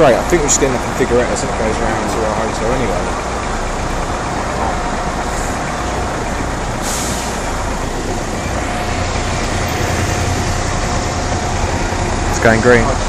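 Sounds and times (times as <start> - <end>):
engines idling in traffic: 0.0 - 13.0
air brake hiss: 6.8 - 7.5.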